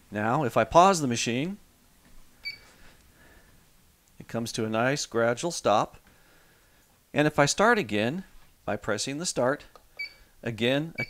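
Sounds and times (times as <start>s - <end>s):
treadmill console beep: 2.4s - 2.7s, 10.0s - 10.2s.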